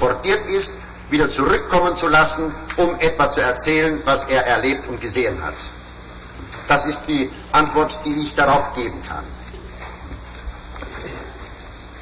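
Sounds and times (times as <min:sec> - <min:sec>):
man speaking: 0:00.0 - 0:05.8, 0:06.7 - 0:09.4
recording hum and hiss: 0:00.0 - 0:12.0.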